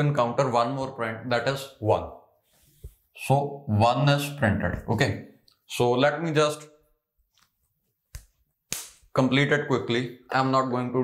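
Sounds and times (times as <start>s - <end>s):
person speaking: 3.1s - 6.7s.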